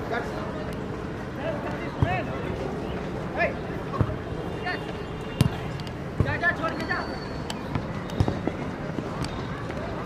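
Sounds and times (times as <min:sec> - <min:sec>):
outdoor hubbub: 0:00.0 - 0:10.0.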